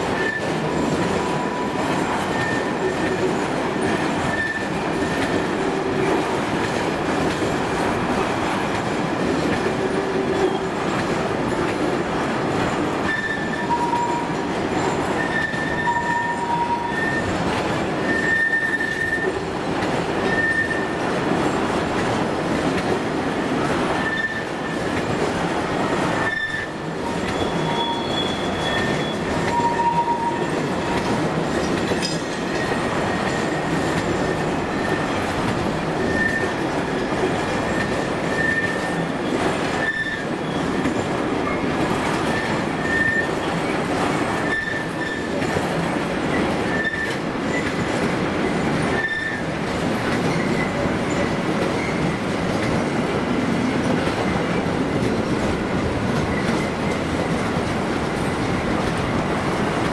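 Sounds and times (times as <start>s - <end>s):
train wheels rumbling on rail: 0.0s - 59.9s
wheel squeals: 0.1s - 0.5s, 1.2s - 3.1s, 4.3s - 5.4s, 13.0s - 17.4s, 18.0s - 19.4s, 20.2s - 21.0s, 24.0s - 25.0s, 26.2s - 35.2s, 36.0s - 40.9s, 42.2s - 43.8s, 44.4s - 45.4s, 46.3s - 47.8s, 48.8s - 49.5s.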